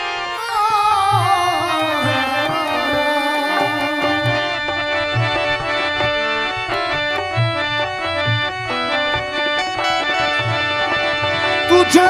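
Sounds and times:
harmonium melody: 0.0 - 12.0
tabla deep strokes: 1.1 - 11.7.

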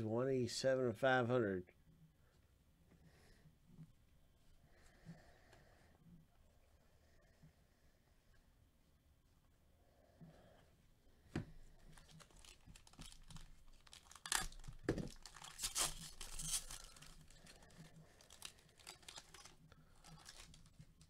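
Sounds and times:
wrapper tearing and crinkling: 11.9 - 21.0.

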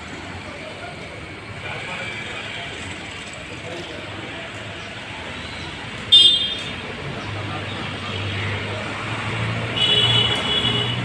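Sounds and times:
traffic noise: 0.0 - 11.0
vehicle horns honking: 6.1 - 6.8, 9.7 - 11.0.

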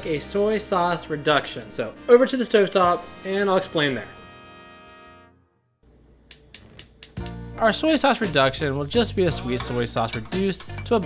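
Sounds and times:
background music: 0.0 - 5.6, 6.3 - 11.0
gas stove igniter clicking: 6.3 - 7.4.

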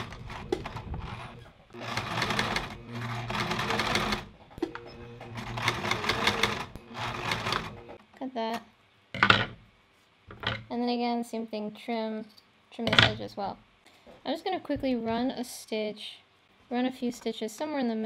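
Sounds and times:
sewing machine stitching: 0.0 - 8.0.

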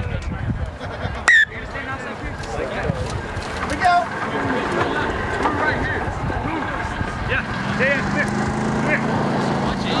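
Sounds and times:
distant voices shouting: 1.2 - 10.0.

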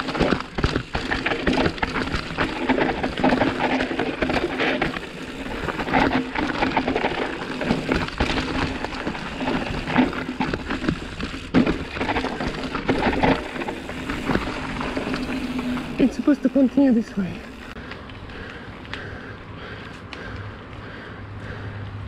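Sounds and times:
tyres rolling over dirt: 0.0 - 19.8
bike rattling over bumps: 0.0 - 21.8.

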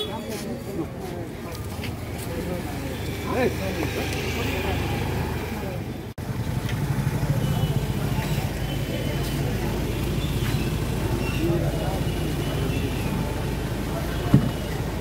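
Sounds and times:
vehicle engines running: 0.0 - 15.0.

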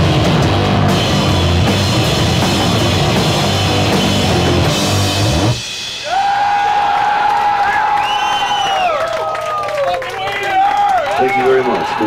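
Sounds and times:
heavy rock band playing: 0.0 - 6.7.

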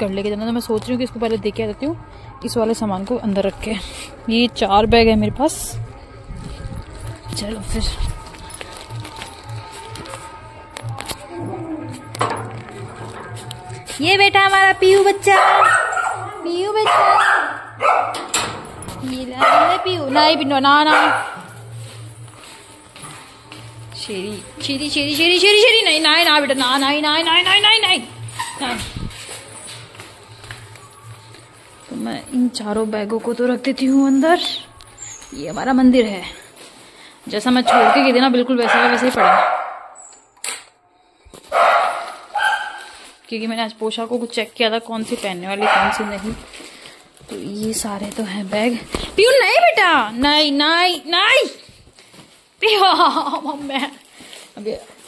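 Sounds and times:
dog barking: 15.3 - 18.3, 19.4 - 21.6, 37.6 - 40.0, 41.5 - 42.9, 45.6 - 46.3
dog yipping: 15.4 - 18.2, 41.5 - 42.9.

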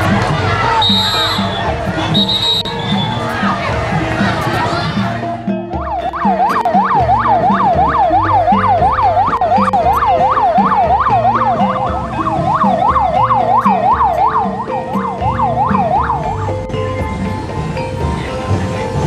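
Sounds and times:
music: 0.0 - 19.0
siren yelping: 5.8 - 16.6.

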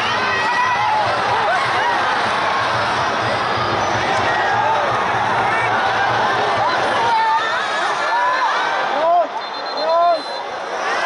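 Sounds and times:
crowd shouting and chanting: 0.0 - 11.0.

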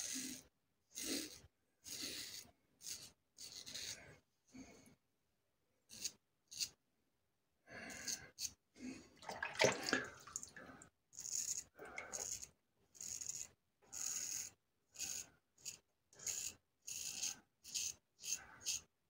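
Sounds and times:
razor scraping stubble: 1.0 - 4.1.

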